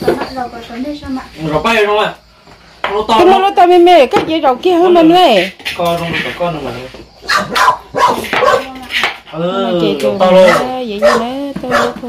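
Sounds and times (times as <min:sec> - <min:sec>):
people talking: 0:00.0 - 0:02.1, 0:02.9 - 0:07.0, 0:08.4 - 0:12.0.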